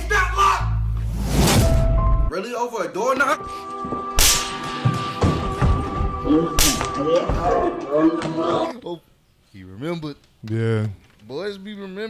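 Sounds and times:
belt whip crack: 0:04.2 - 0:04.6, 0:06.6 - 0:07.0.

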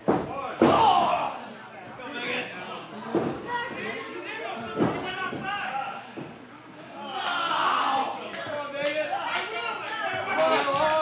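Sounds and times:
wrestlers hitting the ring: 0:00.0 - 0:01.2.

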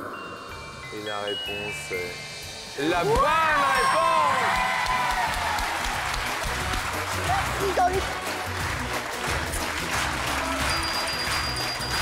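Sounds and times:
upbeat game-show music: 0:00.0 - 0:12.0
audience applauding: 0:03.9 - 0:12.0.

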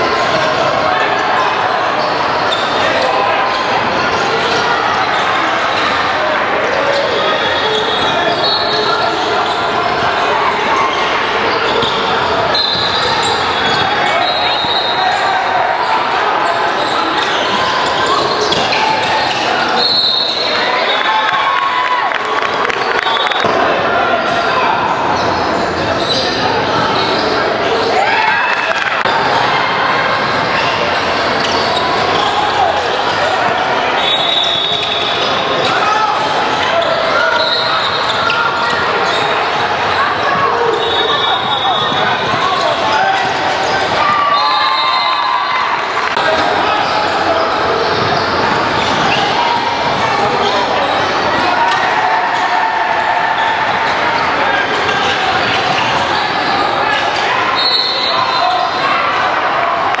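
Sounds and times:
many overlapping voices: 0:00.0 - 1:00.0.

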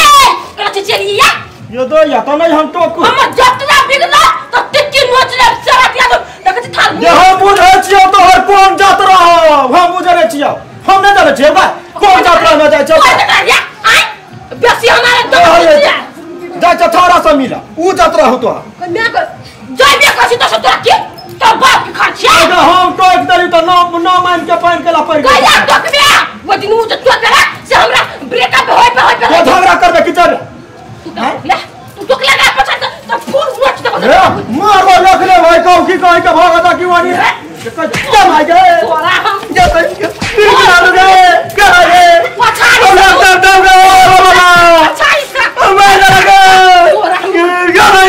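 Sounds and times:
loud shout: 0:00.0 - 0:01.4, 0:03.0 - 0:09.6, 0:19.8 - 0:22.8, 0:25.1 - 0:29.9, 0:31.5 - 0:35.8, 0:38.1 - 0:48.0
man and woman arguing: 0:00.0 - 0:48.0.

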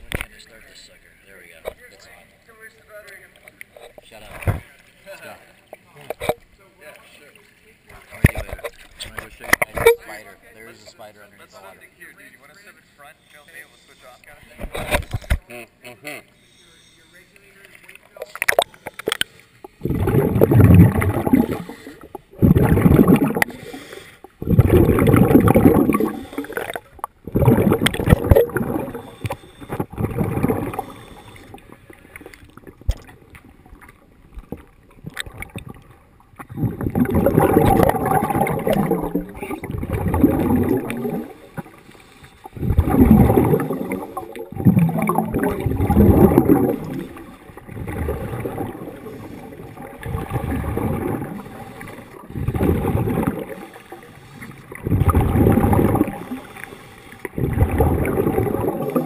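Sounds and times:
gurgling bubbles underwater: 0:18.2 - 0:59.0.

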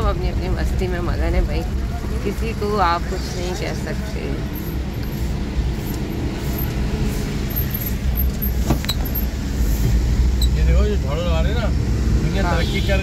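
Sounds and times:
car engine and road rumble: 0:00.0 - 0:13.0.

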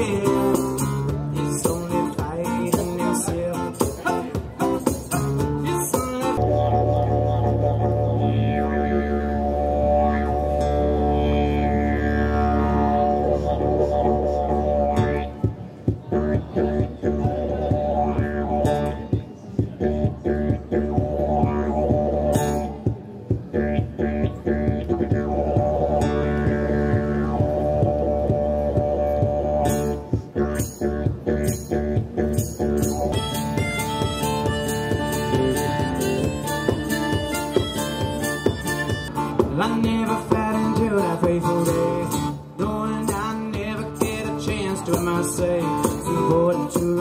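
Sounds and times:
acoustic guitar strummed: 0:00.0 - 0:47.0
didgeridoo droning: 0:00.0 - 0:47.0
harmonica: 0:23.6 - 0:39.5.

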